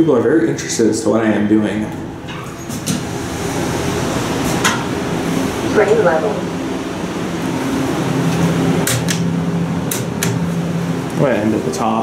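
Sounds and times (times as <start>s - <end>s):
elevator machinery humming: 0.0s - 12.0s.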